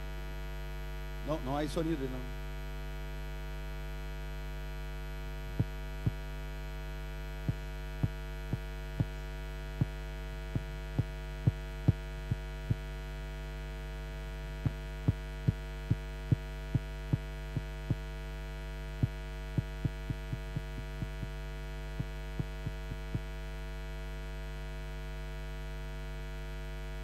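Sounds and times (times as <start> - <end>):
electrical mains hum: 0.0 - 27.0.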